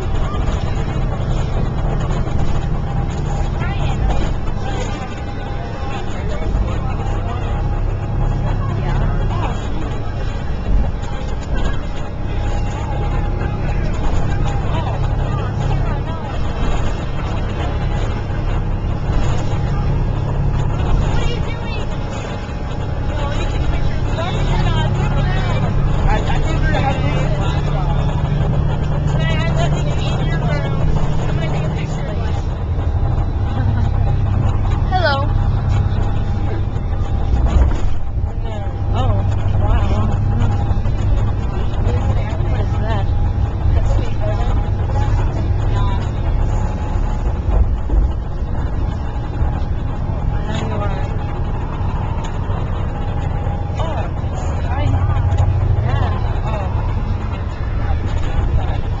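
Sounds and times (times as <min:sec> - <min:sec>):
bus engine and road rumble: 0:00.0 - 0:59.0
indistinct passenger voices: 0:00.0 - 0:59.0.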